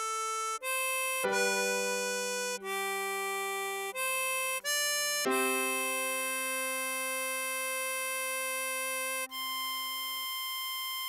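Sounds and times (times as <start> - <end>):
computer-rendered harmonica melody: 0.0 - 11.0.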